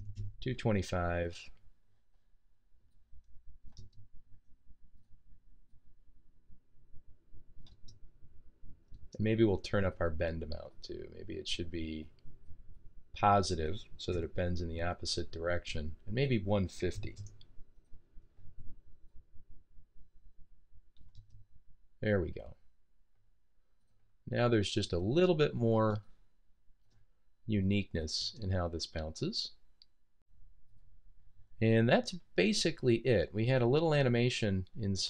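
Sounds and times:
computer mouse click: 0:02.9 - 0:04.1, 0:07.6 - 0:08.0, 0:16.9 - 0:17.5, 0:20.9 - 0:21.4.

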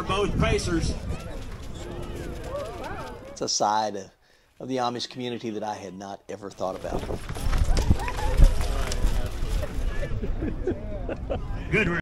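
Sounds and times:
spectators chattering: 0:00.0 - 0:03.5, 0:07.5 - 0:12.0
hoofbeats on dirt track: 0:00.4 - 0:03.4, 0:06.6 - 0:10.1.

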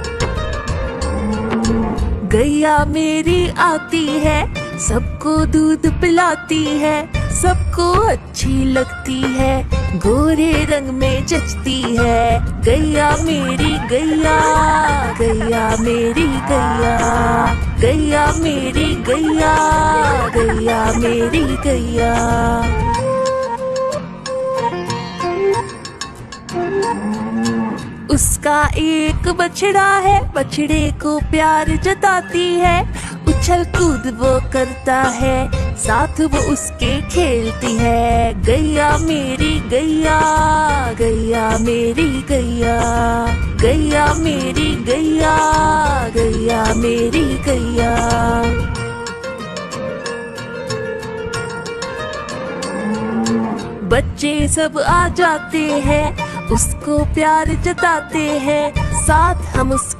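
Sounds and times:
light rhythmic backing music: 0:00.0 - 0:59.9
cow mooing: 0:00.8 - 0:02.2, 0:13.4 - 0:17.6, 0:26.6 - 0:28.1, 0:52.3 - 0:53.9.

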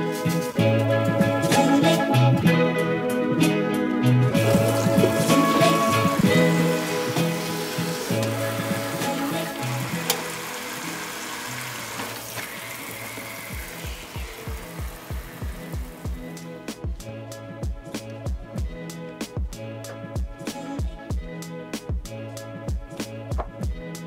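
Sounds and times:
background music: 0:00.0 - 0:24.0
faucet sprayer running water into sink: 0:04.4 - 0:16.2.

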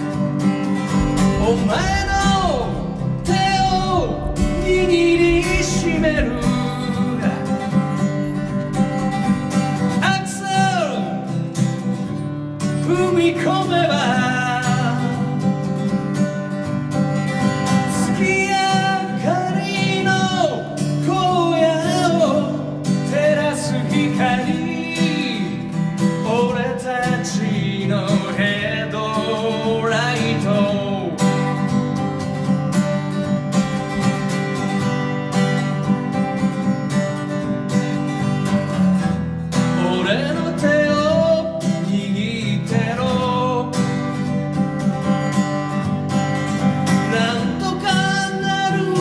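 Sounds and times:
strummed acoustic guitar: 0:00.0 - 0:49.0
man singing ballad: 0:00.8 - 0:11.4, 0:12.8 - 0:15.5, 0:17.9 - 0:31.6, 0:39.6 - 0:44.2, 0:46.9 - 0:49.0.

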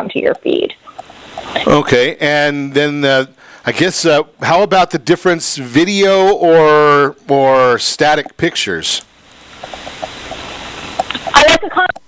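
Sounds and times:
audio line hiss: 0:00.0 - 0:12.0.

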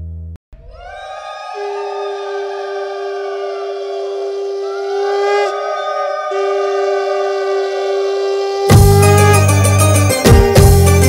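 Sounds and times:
conch shells blown: 0:06.3 - 0:11.0.

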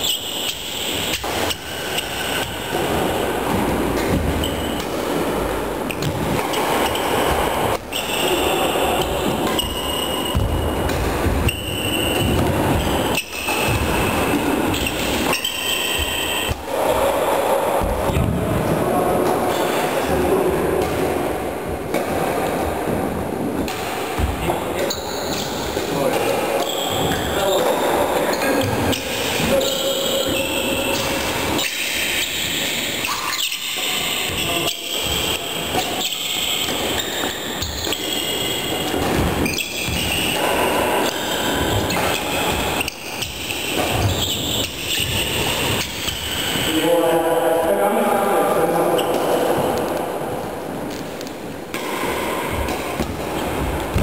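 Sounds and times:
racket striking shuttlecock: 0:00.0 - 0:16.8, 0:51.7 - 0:54.0
shoes squeaking on wooden floor: 0:00.0 - 0:17.1, 0:24.2 - 0:46.8.

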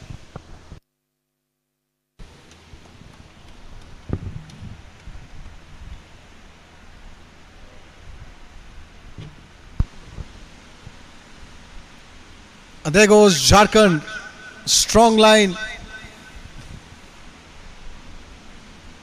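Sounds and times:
steady hiss: 0:02.2 - 0:19.0.

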